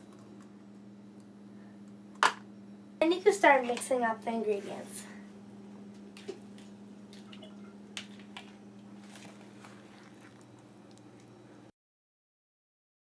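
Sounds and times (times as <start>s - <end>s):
steady low hum: 0.0s - 11.7s.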